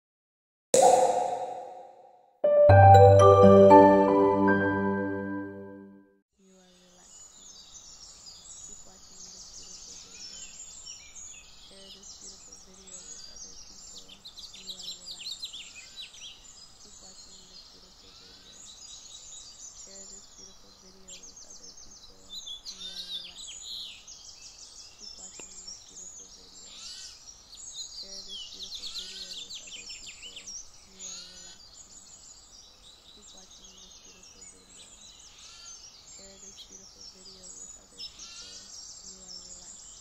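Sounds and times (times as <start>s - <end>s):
songbirds singing and chirping: 6.6s - 40.0s.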